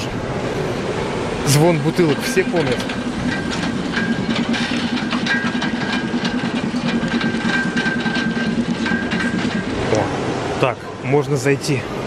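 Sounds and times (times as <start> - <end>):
bus engine drone: 0.0 - 11.0
rattle of clicks and clinks: 1.9 - 9.7.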